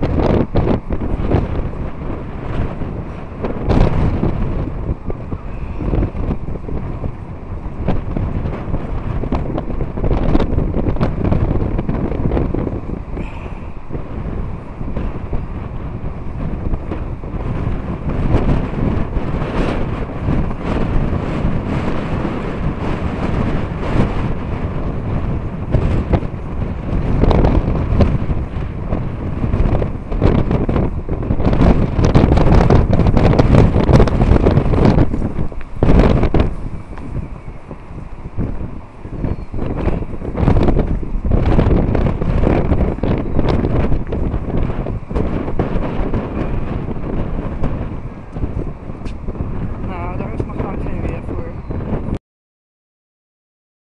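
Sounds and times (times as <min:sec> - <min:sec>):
wind buffeting microphone: 0:00.0 - 0:52.2.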